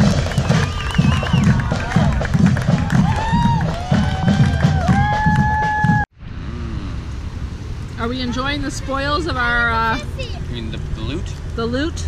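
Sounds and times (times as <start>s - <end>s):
marching band playing: 0.0s - 6.0s
steady drum beat: 0.0s - 6.1s
outdoor background noise: 0.0s - 12.0s.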